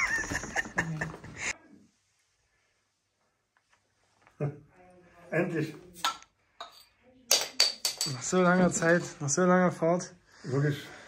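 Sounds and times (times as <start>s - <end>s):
glass bottles clinking: 6.0s - 8.9s.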